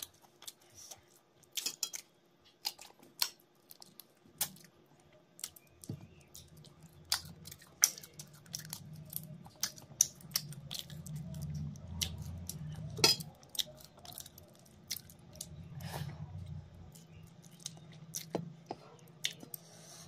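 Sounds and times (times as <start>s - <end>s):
wet chewing: 0.0s - 20.0s.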